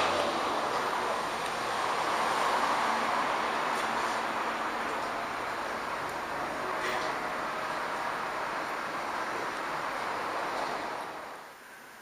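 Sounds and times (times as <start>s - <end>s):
steady rushing noise: 0.0s - 11.6s.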